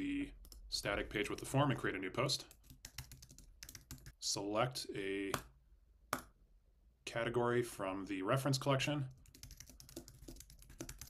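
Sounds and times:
computer keyboard typing: 0:02.5 - 0:04.2, 0:09.2 - 0:11.0.

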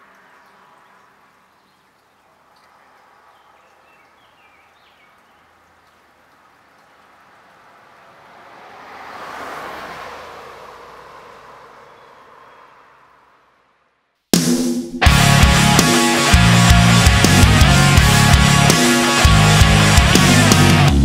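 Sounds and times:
vehicle passing on road: 0:00.0 - 0:01.5, 0:05.1 - 0:14.1
bird chirps: 0:00.3 - 0:06.0.

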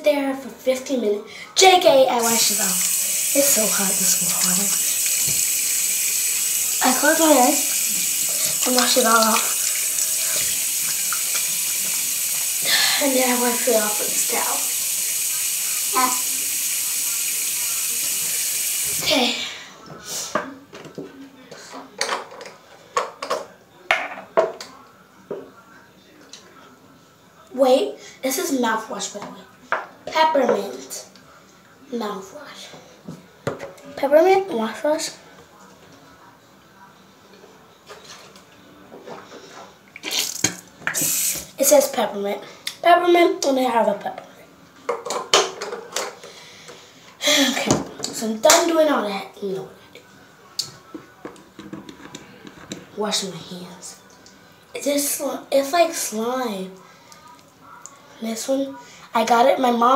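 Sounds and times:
tap running into sink: 0:02.2 - 0:12.6.

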